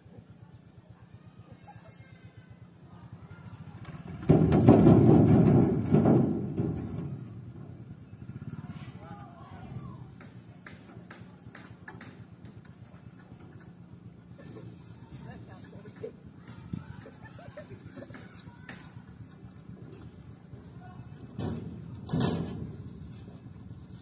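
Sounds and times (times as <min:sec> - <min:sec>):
motorcycle engine revving: 0:03.6 - 0:15.0.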